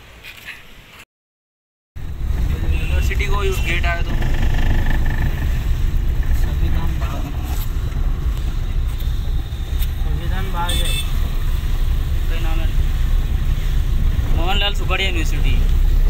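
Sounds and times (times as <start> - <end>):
car engine rumble inside cabin: 2.0 - 8.6
tyres on wet road: 2.0 - 16.0.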